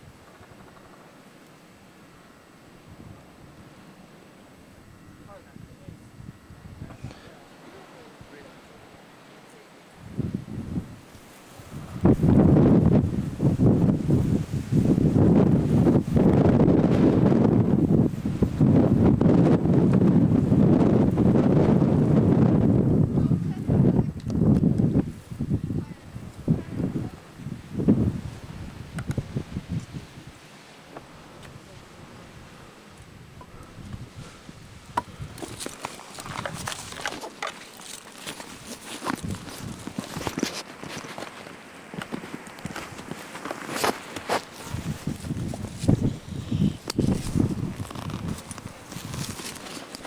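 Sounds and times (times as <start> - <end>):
muffled voices: 5.2 - 9.9
footsteps on loose rock and twigs: 34.8 - 50.0.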